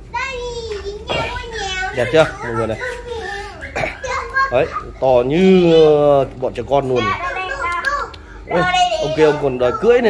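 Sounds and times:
young children talking and playing: 0:00.0 - 0:10.0.

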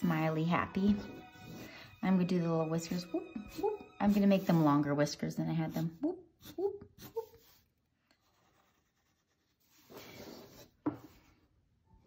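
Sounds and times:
marker drawing on paper: 0:02.9 - 0:05.0, 0:05.6 - 0:11.3.

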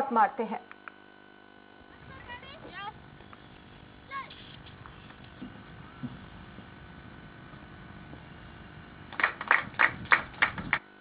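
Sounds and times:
hands clapping: 0:09.1 - 0:10.8.

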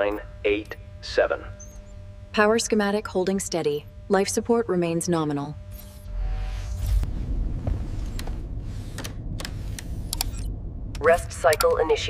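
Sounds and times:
steady low rumble: 0:00.0 - 0:12.0
sharp mechanical clicks: 0:08.9 - 0:11.8.

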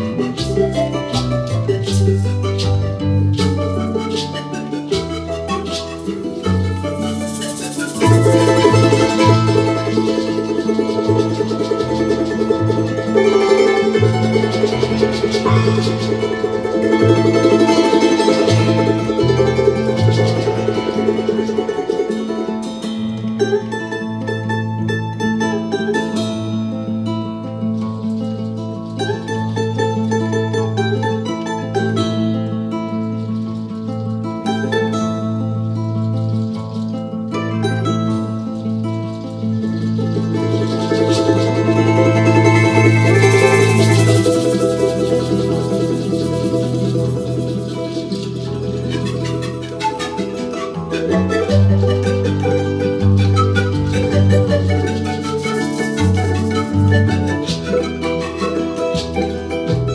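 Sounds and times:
folk band playing: 0:00.0 - 0:59.9.

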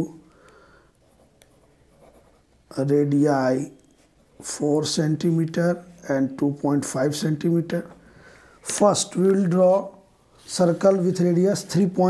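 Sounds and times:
pencil scratching on paper: 0:01.0 - 0:02.6
man speaking: 0:02.7 - 0:03.8, 0:04.4 - 0:08.0, 0:08.6 - 0:12.0.

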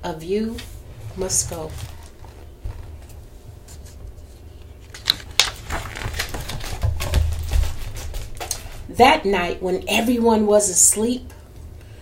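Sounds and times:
book pages rustling: 0:00.6 - 0:08.5.

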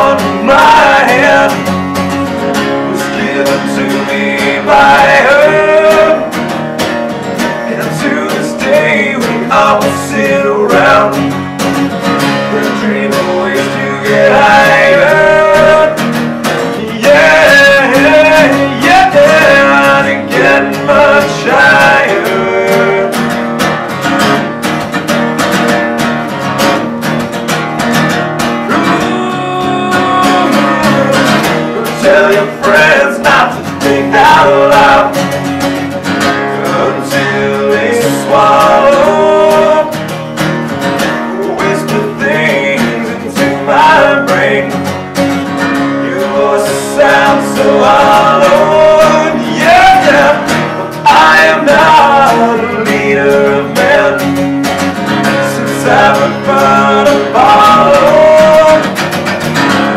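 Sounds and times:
man singing: 0:00.0 - 0:06.5, 0:07.3 - 0:23.4, 0:28.6 - 0:40.3, 0:41.2 - 0:54.6, 0:55.2 - 0:59.2
acoustic guitars strummed: 0:00.0 - 0:59.9.

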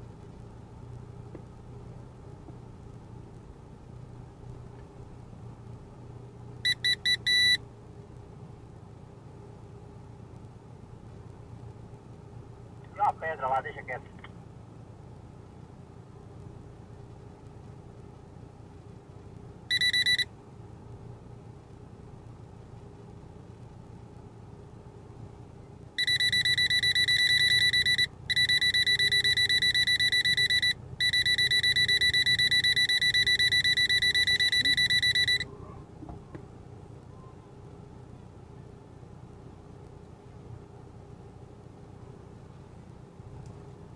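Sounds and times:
rapid electronic beeping: 0:26.0 - 0:35.4.

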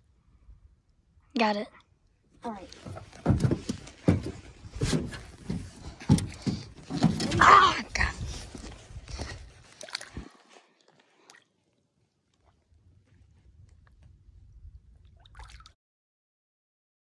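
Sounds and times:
footsteps on metal boat deck: 0:02.7 - 0:09.5.

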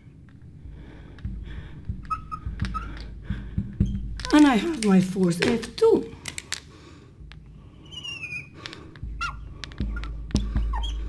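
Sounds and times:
marker squeaking on glass: 0:02.1 - 0:03.0, 0:07.8 - 0:11.0.

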